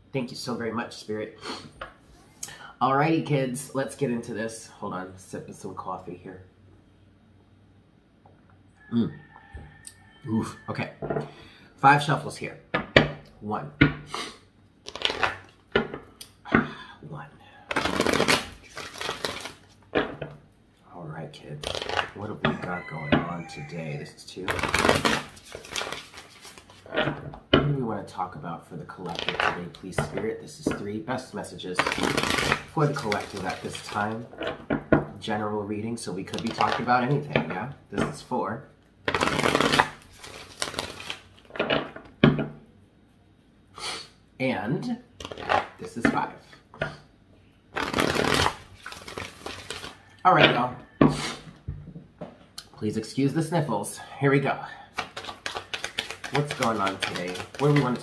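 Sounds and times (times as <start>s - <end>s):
cards shuffling: 14.8s - 15.7s, 17.7s - 20.2s, 21.6s - 22.2s, 24.4s - 27.1s, 29.0s - 30.8s, 31.7s - 34.3s, 36.3s - 38.2s, 39.1s - 41.9s, 45.2s - 46.2s, 47.7s - 50.0s, 55.0s - 58.0s
cards clicking: 55.0s - 58.0s.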